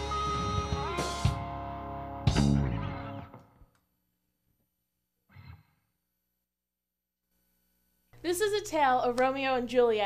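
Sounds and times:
person sighing: 5.3 - 5.9.

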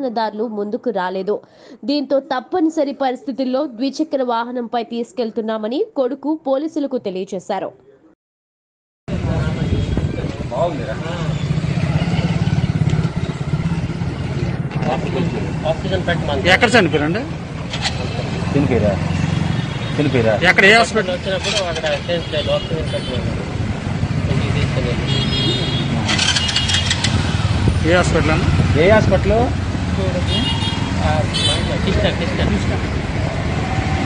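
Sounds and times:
people talking: 0.0 - 7.8, 9.1 - 12.5, 14.7 - 17.3, 17.9 - 19.0, 20.0 - 23.6, 24.3 - 26.2, 27.8 - 30.4, 31.0 - 32.8
motorcycle engine running: 10.2 - 22.1, 23.0 - 34.0.

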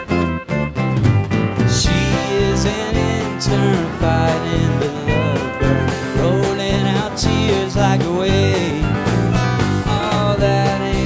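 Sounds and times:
strummed acoustic guitar: 0.0 - 11.0
steady drum beat: 0.8 - 11.0.

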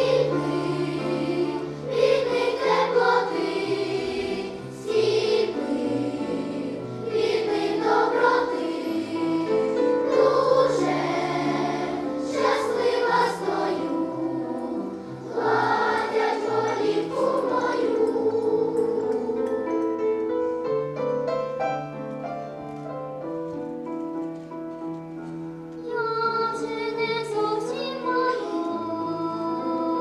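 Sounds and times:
children's choir singing: 0.0 - 20.4, 25.8 - 30.0.

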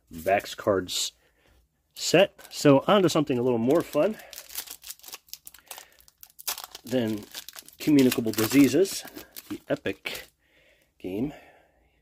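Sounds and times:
foil wrappers crinkling: 3.6 - 10.3.

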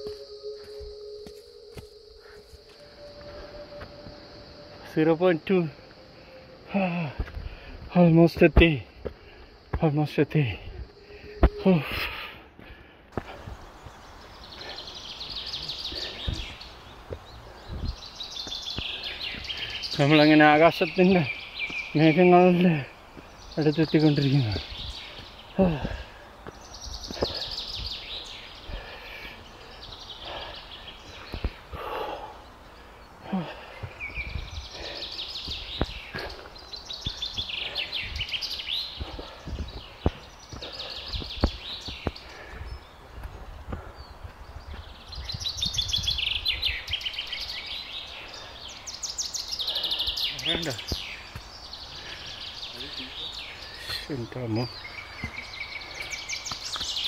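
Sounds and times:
footsteps on rocky trail: 0.0 - 48.6, 49.4 - 57.0
birds singing and trilling: 0.0 - 57.0.

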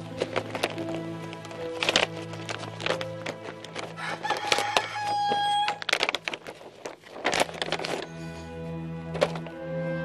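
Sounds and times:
background music with low drone: 0.0 - 10.0
rooster crowing: 4.0 - 5.8.

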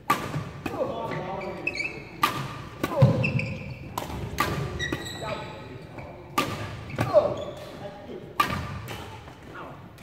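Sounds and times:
rackets striking shuttlecock: 0.0 - 5.4, 6.3 - 9.4.

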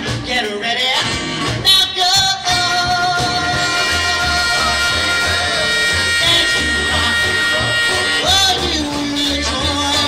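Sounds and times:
electric guitar: 0.0 - 10.0
person singing: 0.0 - 10.0
pulsing bass line: 2.3 - 10.0.

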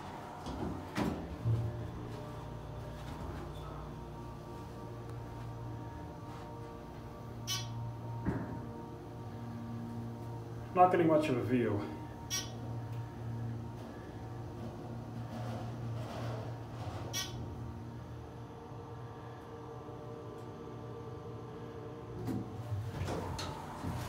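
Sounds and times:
elevator pump motor humming: 0.0 - 24.0
elevator squeaks: 7.4 - 8.0, 12.2 - 12.8, 15.2 - 17.6.

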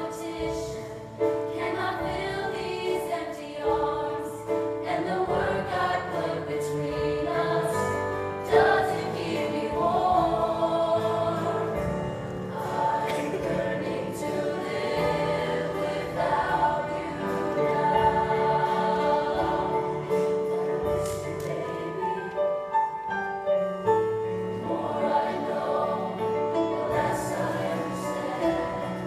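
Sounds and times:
mixed choir singing: 0.0 - 22.9, 24.1 - 29.0.

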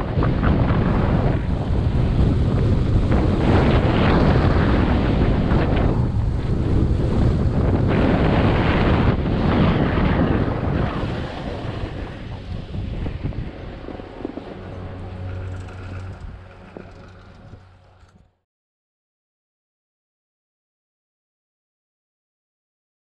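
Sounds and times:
wind buffeting microphone: 0.0 - 18.3.

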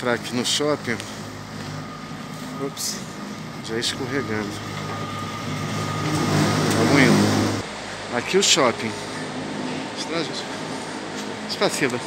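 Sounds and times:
ventilation fan humming: 0.0 - 12.0.

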